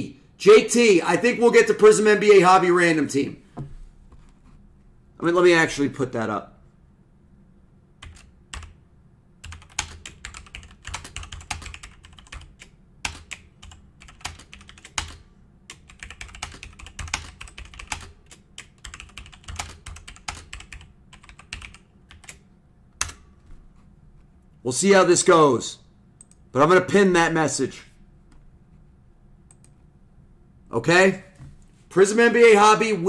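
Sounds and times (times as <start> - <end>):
typing on computer keyboard: 8.0 - 8.8, 9.4 - 22.4.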